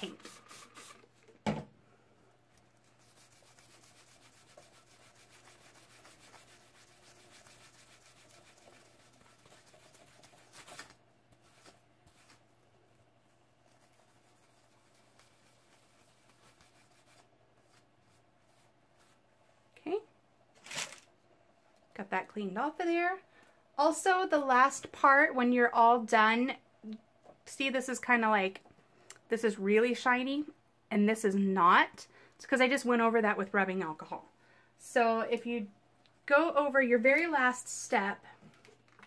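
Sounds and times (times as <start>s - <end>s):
cloth rag rubbing on metal: 2.8s - 10.8s, 13.7s - 19.2s.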